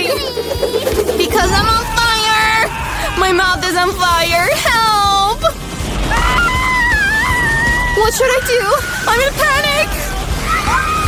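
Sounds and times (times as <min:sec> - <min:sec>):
background music: 0:00.0 - 0:11.0
girl screaming: 0:01.4 - 0:03.6.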